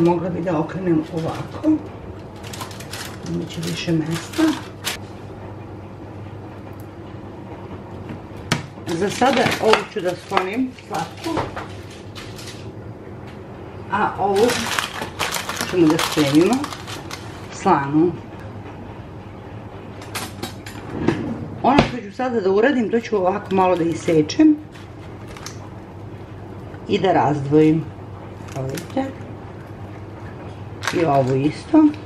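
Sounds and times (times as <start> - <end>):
low kitchen hum: 0.0 - 32.0.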